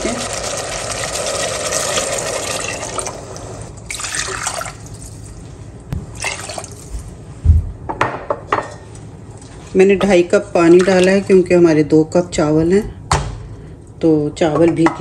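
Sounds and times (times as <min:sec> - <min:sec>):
water pouring into a pot: 0:00.0 - 0:05.2.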